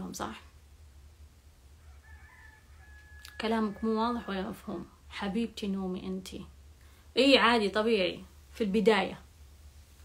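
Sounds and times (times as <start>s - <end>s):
steady low hum: 0.0s - 10.0s
distant rooster crowing: 1.7s - 5.5s.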